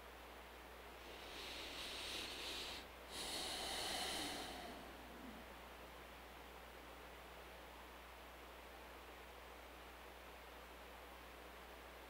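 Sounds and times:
man breathing through nose: 1.0 - 5.5.

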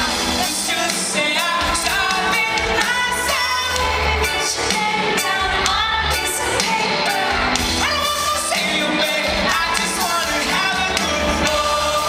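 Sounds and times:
drum kit: 0.0 - 12.0
person singing: 0.0 - 12.0.

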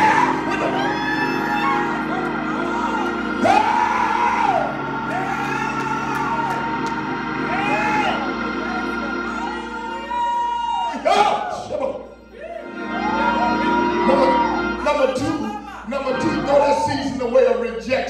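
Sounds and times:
sustained worship chords: 0.0 - 18.0.

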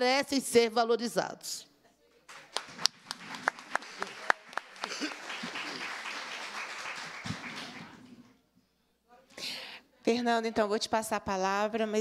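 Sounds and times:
audience applause: 2.3 - 8.2.

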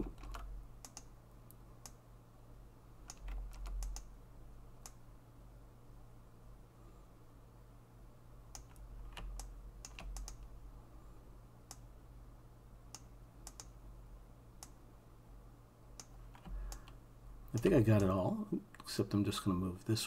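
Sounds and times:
keyboard and mouse clicks: 0.0 - 2.0, 3.0 - 4.1, 8.5 - 10.5, 12.9 - 13.8, 16.0 - 17.0
low steady hum: 0.0 - 20.0.

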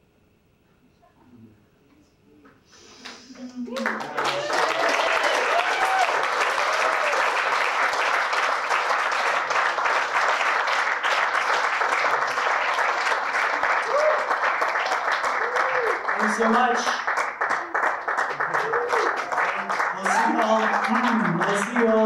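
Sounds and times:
audience applauding: 3.0 - 22.0.

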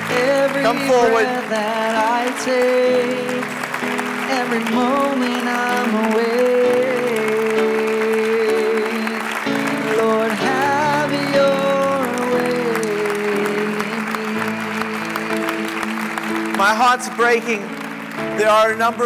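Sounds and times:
person singing: 0.0 - 17.7
held keyboard chords: 0.0 - 19.0.

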